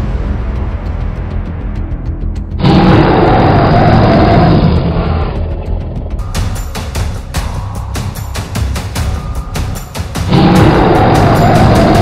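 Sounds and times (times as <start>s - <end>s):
background music: 0.0s - 12.0s
low rumble: 0.0s - 12.0s
dinosaur roar: 2.6s - 6.2s, 10.3s - 12.0s.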